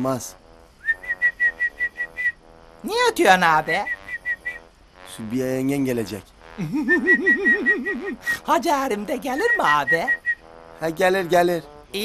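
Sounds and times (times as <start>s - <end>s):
man whistling bird call: 0.8s - 2.4s, 3.8s - 4.7s, 6.8s - 8.4s, 9.4s - 10.5s.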